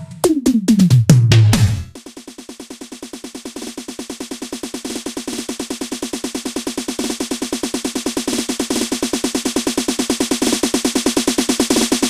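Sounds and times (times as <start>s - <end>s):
electronic drum roll: 0.0s - 12.0s.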